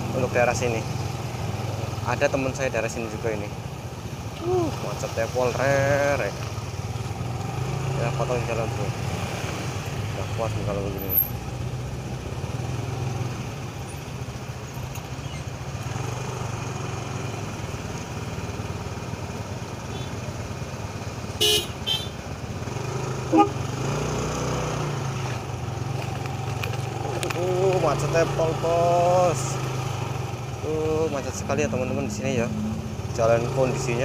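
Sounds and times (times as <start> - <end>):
vehicle horn toots: 21.4 - 22.2, 23.3 - 23.6.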